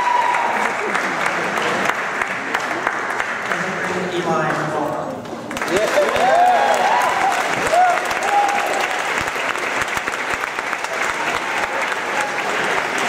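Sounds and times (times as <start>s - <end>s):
crowd whooping: 0.0s - 0.8s, 6.0s - 9.1s
audience applauding: 0.0s - 13.0s.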